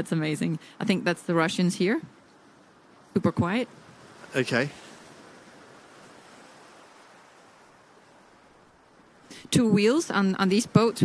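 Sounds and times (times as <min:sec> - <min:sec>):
wind and water rushing: 0:00.0 - 0:11.0.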